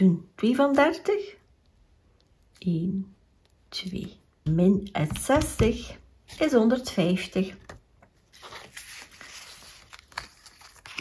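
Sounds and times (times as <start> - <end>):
banknotes rustling: 7.7 - 11.0.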